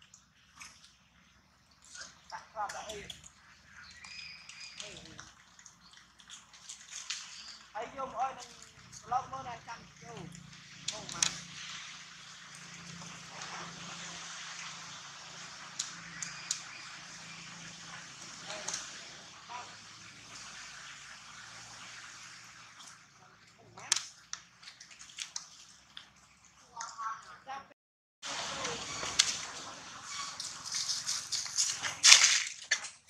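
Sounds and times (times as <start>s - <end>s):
outdoor background hiss: 28.2s - 32.5s.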